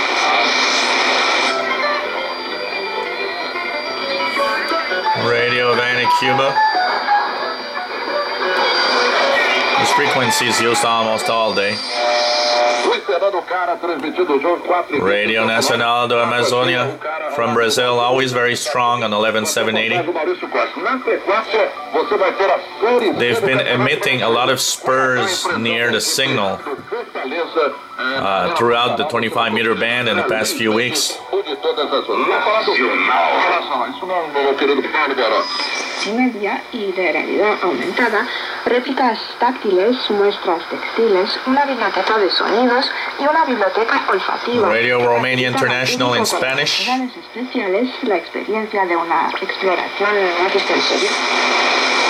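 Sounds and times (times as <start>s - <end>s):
thin radio broadcast voice: 0.0s - 52.0s.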